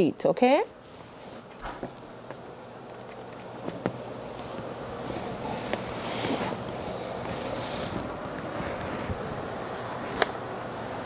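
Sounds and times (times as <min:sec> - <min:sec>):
bed sheet and blanket rustling: 0:04.3 - 0:10.1.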